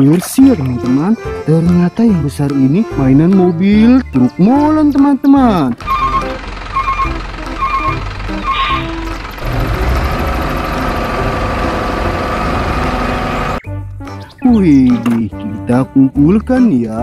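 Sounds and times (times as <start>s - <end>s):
engine-like drone: 5.7s - 13.6s.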